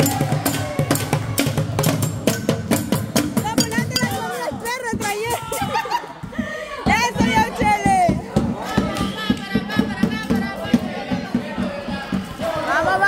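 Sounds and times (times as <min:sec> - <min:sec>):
people shouting and cheering: 0:00.0 - 0:02.3, 0:02.9 - 0:13.0
pots and lids beaten with sticks: 0:00.0 - 0:12.3.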